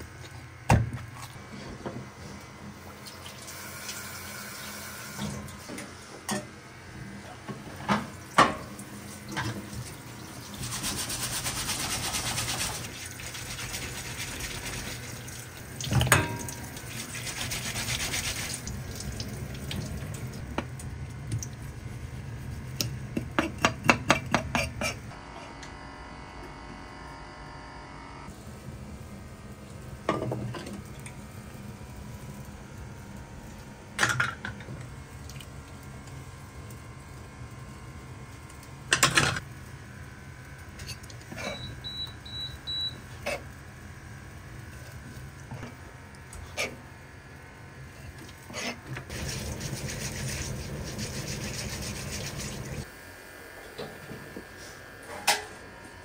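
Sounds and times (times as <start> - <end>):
brush scrubbing shell: 17.0 - 18.6, 49.1 - 52.8.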